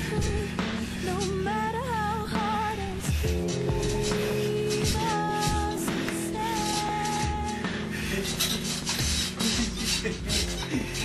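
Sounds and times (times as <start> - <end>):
dull low thumps: 0.0 - 11.0
faint music: 0.0 - 11.0
scratchy rubbing and rustling: 3.1 - 11.0.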